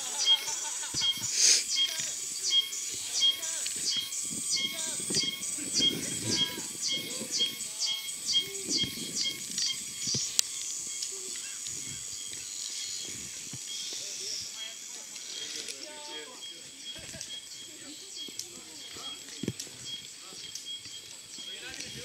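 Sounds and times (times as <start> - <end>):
high-pitched animal chirping: 0.0 - 13.1.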